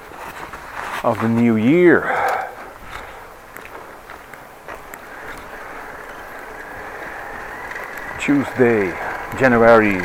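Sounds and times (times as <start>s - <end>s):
tyres hissing on wet road: 3.1s - 10.0s
small clicks and rattles: 3.6s - 10.0s.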